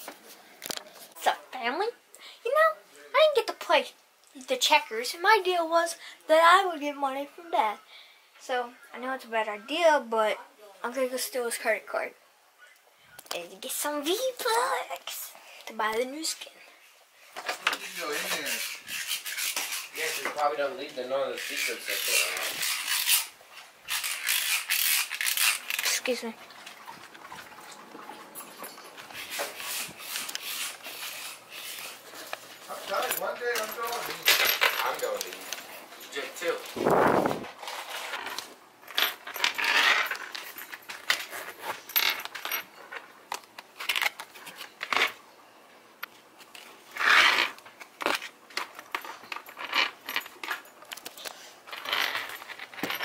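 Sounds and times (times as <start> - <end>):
wallet metal jingles and clicks: 28.5 - 36.8
microphone rubbing on clothing: 36.7 - 37.7.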